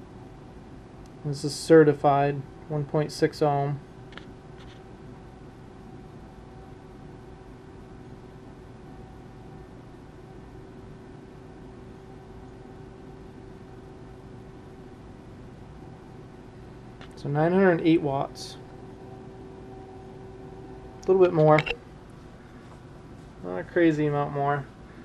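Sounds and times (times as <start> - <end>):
electrical hum and hiss: 0.0 - 25.0.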